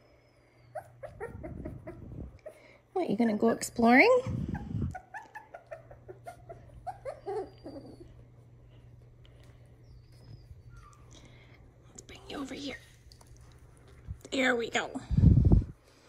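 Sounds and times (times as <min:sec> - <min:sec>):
puppy whining: 0:00.0 - 0:02.8, 0:04.2 - 0:11.6
low steady hum: 0:00.0 - 0:16.0
puppies whimpering: 0:00.2 - 0:02.8, 0:04.3 - 0:11.5.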